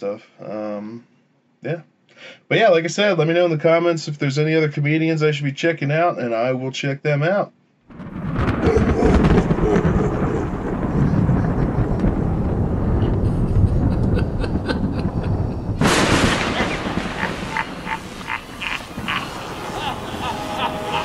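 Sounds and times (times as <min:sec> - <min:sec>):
electric crackles: 0:07.9 - 0:21.0
loud thunder crack: 0:07.9 - 0:21.0
thunder rumble: 0:07.9 - 0:21.0.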